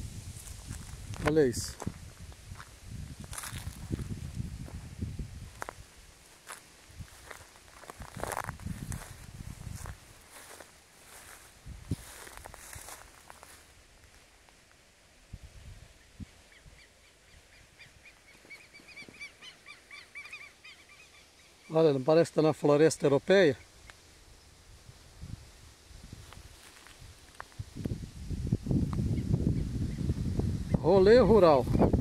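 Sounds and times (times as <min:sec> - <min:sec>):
wind buffeting microphone: 0:00.0 - 0:13.0, 0:24.7 - 0:32.0
bird chirping rapidly: 0:16.6 - 0:21.8.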